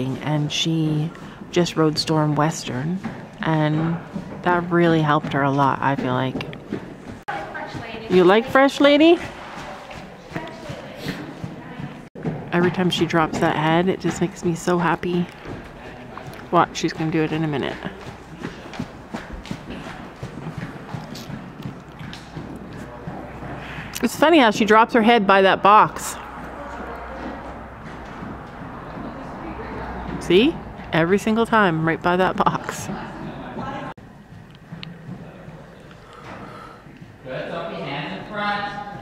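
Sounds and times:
horse hooves thudding on dirt: 0.0s - 39.0s.

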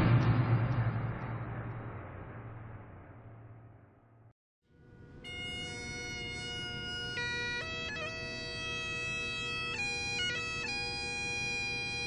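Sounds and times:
bagpipes playing: 4.9s - 12.0s.

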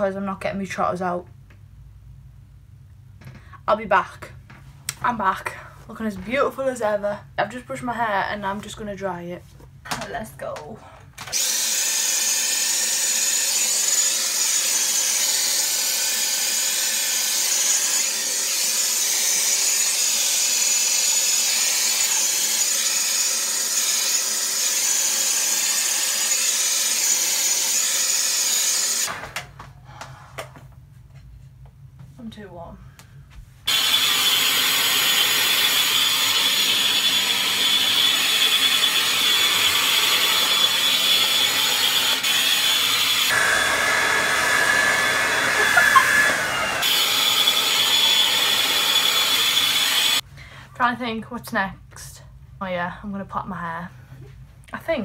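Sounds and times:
hair dryer blowing: 11.3s - 29.4s, 33.7s - 50.2s.

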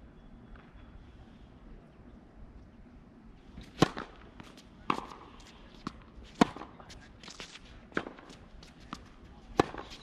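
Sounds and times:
racket hitting tennis ball: 3.6s - 10.0s.

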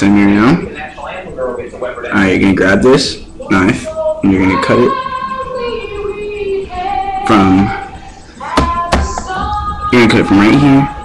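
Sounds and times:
background music: 3.0s - 11.0s.

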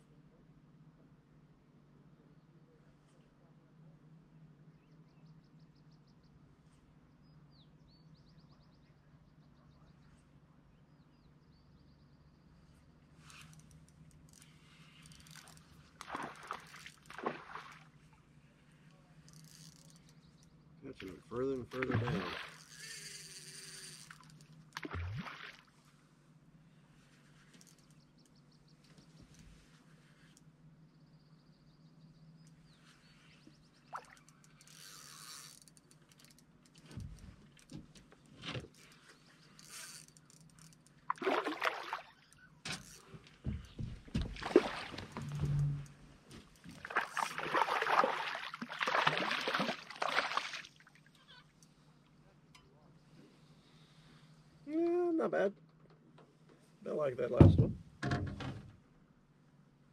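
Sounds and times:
fish splashing water: 15.4s - 17.9s, 21.8s - 23.0s, 24.8s - 25.7s, 41.1s - 42.1s, 44.2s - 45.2s, 46.8s - 51.0s.

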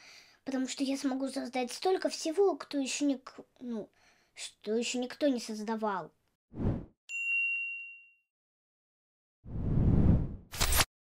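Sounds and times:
short whoosh: 6.6s - 6.9s, 9.5s - 10.5s
bright bell-like ding: 7.1s - 8.2s.

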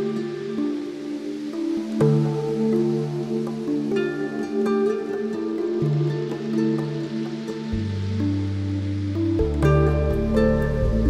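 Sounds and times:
calm slow instrumental music: 0.0s - 11.0s.

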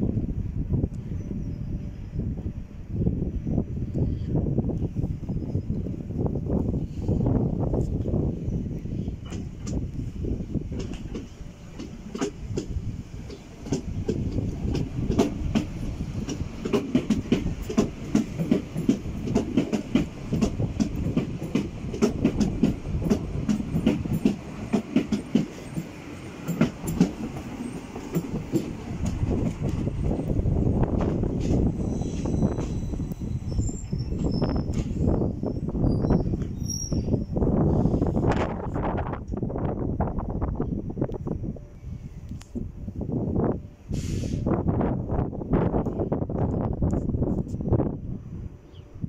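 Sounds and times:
train rumble: 0.0s - 49.0s
train wheels clattering: 10.7s - 35.3s
high wheel squeal: 31.5s - 37.3s.

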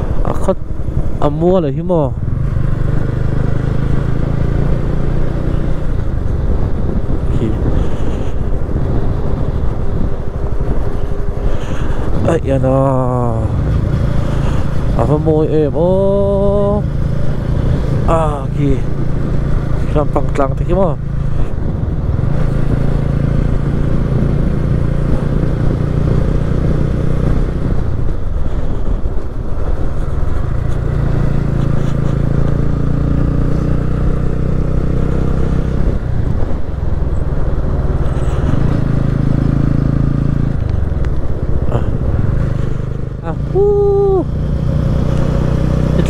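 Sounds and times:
motorcycle engine droning: 0.0s - 46.0s.

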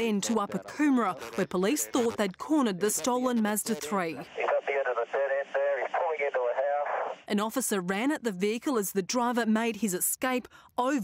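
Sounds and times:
voice over tinny police radio: 3.7s - 7.2s.

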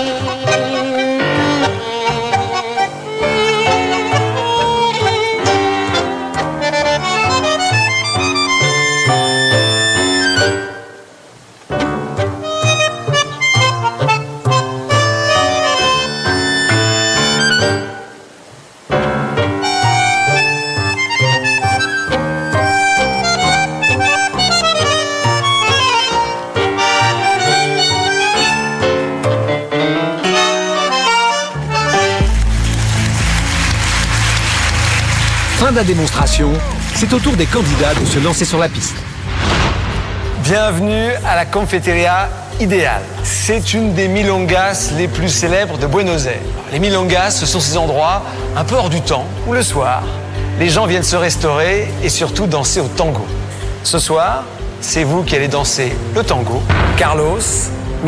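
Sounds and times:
tango music with bandoneon: 0.0s - 38.4s, 41.7s - 56.7s
wash of noise: 32.5s - 43.3s.

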